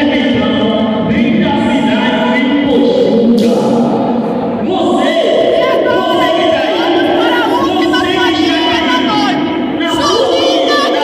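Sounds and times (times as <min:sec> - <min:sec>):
crowd singing in echoing hall: 0:00.0 - 0:11.0.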